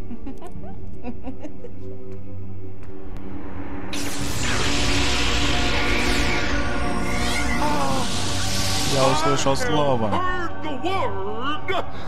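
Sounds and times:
ominous background music: 0:01.7 - 0:12.0
hissing shimmering energy effect: 0:03.2 - 0:09.9
warbling distorted voice: 0:04.0 - 0:09.8.

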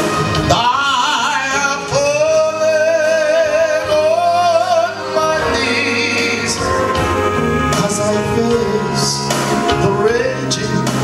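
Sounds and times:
man singing with vibrato: 0:00.0 - 0:11.0.

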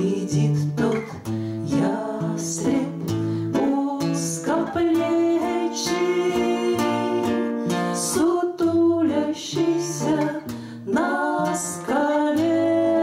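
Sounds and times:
acoustic guitars: 0:00.0 - 0:13.0
women singing together: 0:00.0 - 0:13.0.

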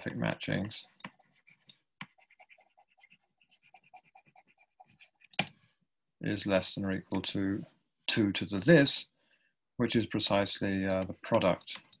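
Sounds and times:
stylus writing on tablet screen: 0:00.0 - 0:05.7.

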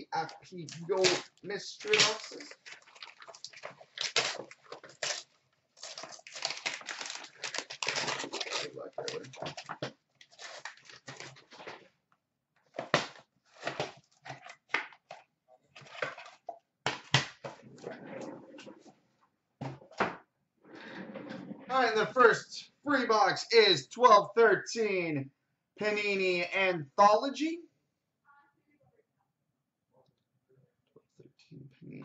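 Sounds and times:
foil wrapping crinkling and tearing: 0:00.7 - 0:11.8.

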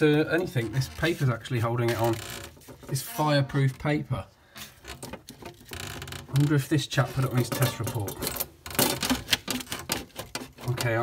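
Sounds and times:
fuse board rattling against wall: 0:08.4 - 0:11.0.

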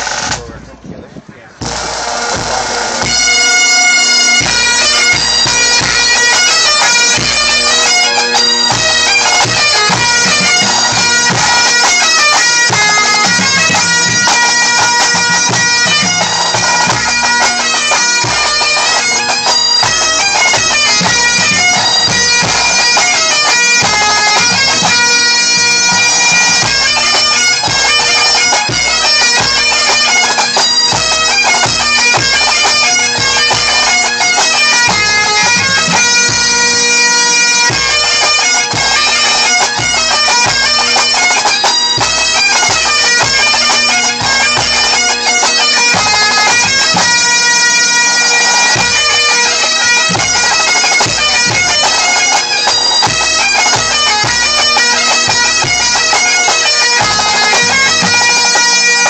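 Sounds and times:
bagpipes playing: 0:00.0 - 0:00.5, 0:01.5 - 0:59.0
snare and bass drums: 0:00.0 - 0:00.8, 0:01.6 - 0:03.2.

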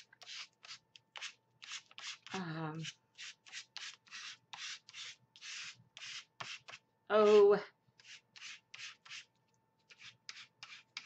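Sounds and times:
sponge scrubbing paint on paper: 0:00.0 - 0:07.4, 0:08.0 - 0:11.0.

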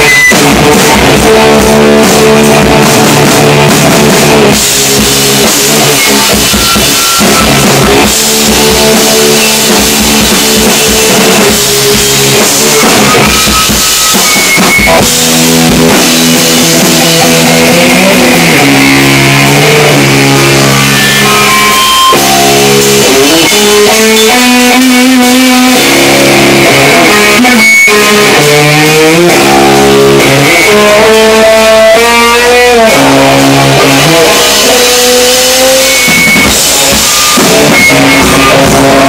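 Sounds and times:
drums: 0:00.0 - 0:39.0
loud rock music: 0:00.0 - 0:39.0
electric guitar chord ringing: 0:04.5 - 0:39.0.

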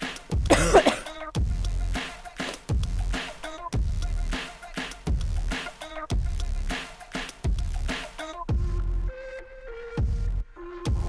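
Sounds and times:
electronic workout music: 0:00.0 - 0:11.0
woman coughing: 0:00.5 - 0:01.2.

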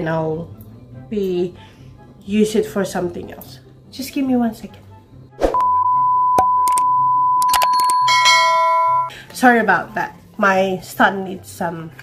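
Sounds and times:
high steady test tone beep: 0:05.6 - 0:09.1
bell-like chime: 0:07.4 - 0:09.1.

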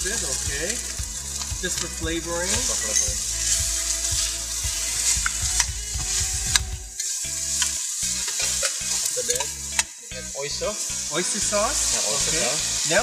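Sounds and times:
vegetables sizzling in hot oil: 0:00.0 - 0:13.0
metal spatula stirring: 0:07.0 - 0:09.8.

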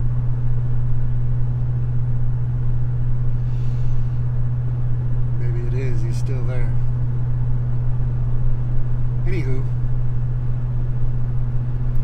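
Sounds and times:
exhaust hum inside vehicle cab: 0:00.0 - 0:12.0.

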